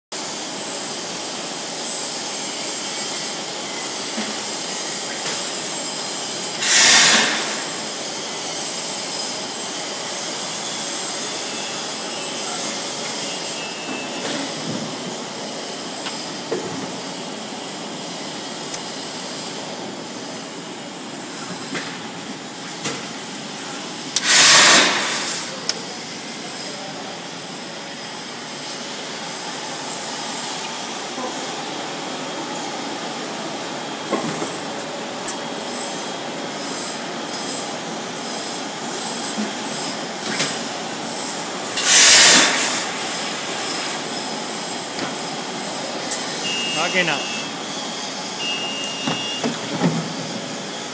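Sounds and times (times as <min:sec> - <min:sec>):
loud burst of air hissing: 0:00.2 - 0:20.5, 0:21.3 - 0:27.6, 0:39.7 - 0:50.9
machine humming and hissing: 0:00.2 - 0:50.9.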